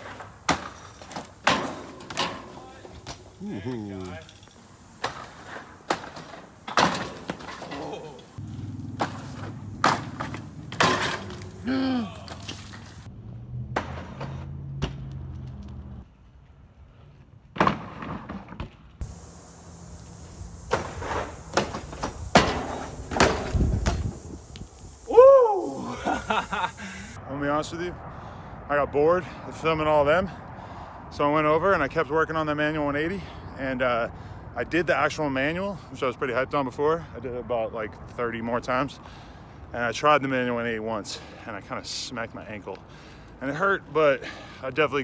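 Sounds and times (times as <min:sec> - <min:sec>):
bikes knocking on wooden benches: 0:05.0 - 0:12.9, 0:20.6 - 0:24.2
short shouts: 0:11.6 - 0:12.4, 0:25.1 - 0:26.0.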